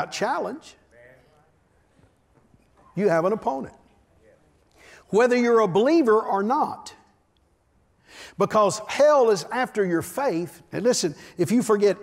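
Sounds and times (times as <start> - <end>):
man preaching: 0.0 - 1.3, 3.0 - 3.8, 4.9 - 7.1, 8.2 - 12.0.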